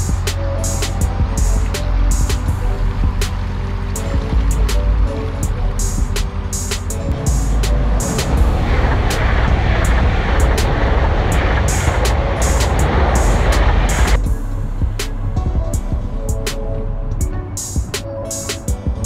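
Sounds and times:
music with steady beat: 0:00.0 - 0:19.0
train crossing a bridge: 0:00.0 - 0:19.0.

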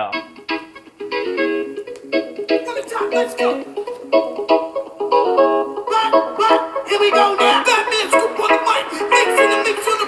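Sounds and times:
lounge music through tablet speakers: 0:00.0 - 0:10.0.

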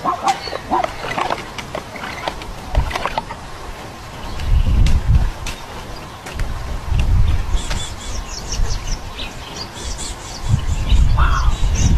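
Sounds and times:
animal barking calls: 0:00.0 - 0:03.2.

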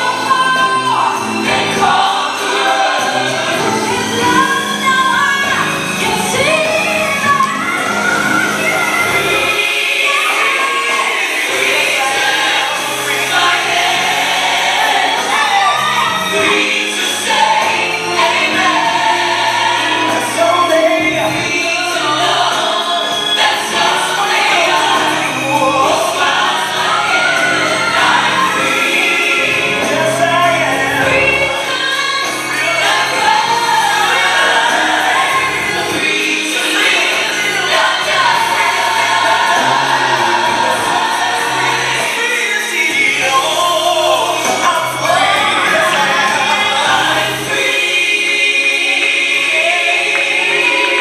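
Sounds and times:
gospel choir singing held notes: 0:00.0 - 0:51.0.

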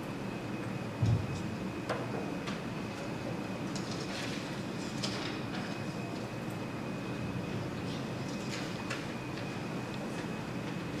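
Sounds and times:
faint steady high whine: 0:00.0 - 0:11.0.

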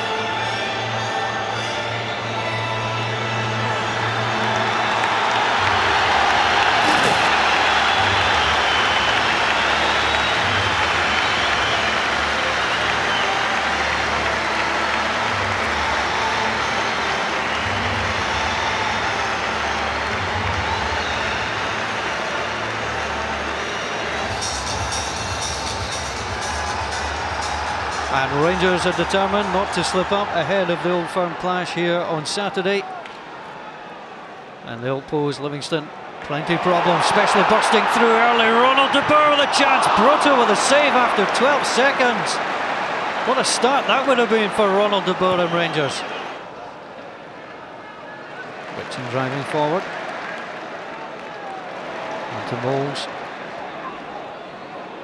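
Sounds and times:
stadium crowd cheering: 0:00.0 - 0:55.0.

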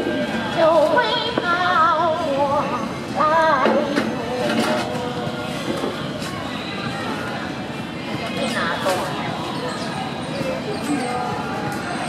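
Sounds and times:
murmur of voices: 0:00.0 - 0:12.0
woman singing with vibrato: 0:00.5 - 0:04.9.

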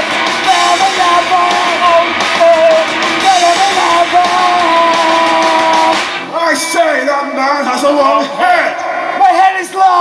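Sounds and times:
punk rock band playing live: 0:00.0 - 0:07.0
man speaking into microphone: 0:00.5 - 0:10.0.

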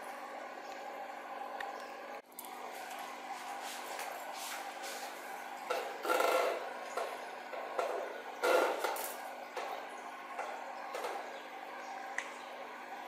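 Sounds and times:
rubbing noises: 0:03.3 - 0:09.2.

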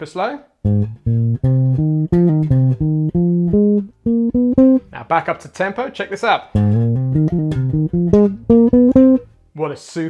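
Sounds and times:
electric bass guitar notes: 0:00.6 - 0:05.0, 0:06.5 - 0:09.3.

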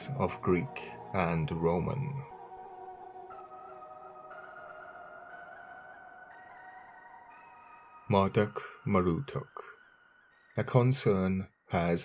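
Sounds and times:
ambient synthesizer music: 0:00.0 - 0:12.0.

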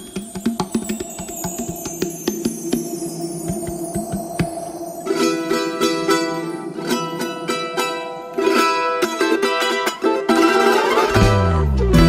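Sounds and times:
falling sweep: 0:00.3 - 0:10.9
strummed charango chords: 0:05.1 - 0:12.0.

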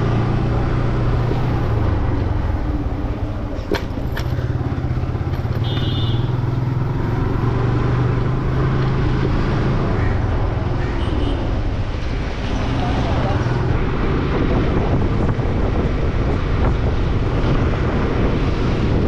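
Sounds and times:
motorcycle engine running: 0:00.0 - 0:11.1
wind noise on microphone: 0:11.4 - 0:19.0.

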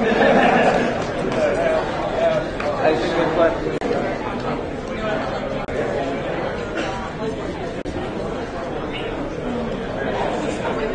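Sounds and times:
crowd chatter: 0:00.0 - 0:10.9.

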